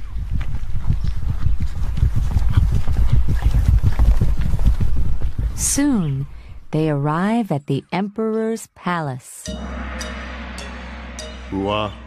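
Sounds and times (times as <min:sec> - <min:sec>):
fast horse hoofbeats: 0:00.0 - 0:06.3.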